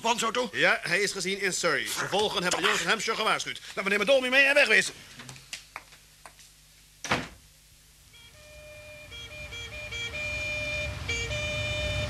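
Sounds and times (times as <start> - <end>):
police siren two-tone: 8.2 - 12.0
engine rumble: 9.0 - 12.0.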